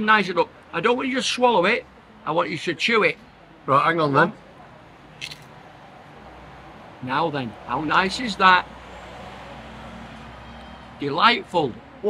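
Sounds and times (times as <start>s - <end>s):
faint street ambience hum and hiss: 0.0s - 12.0s.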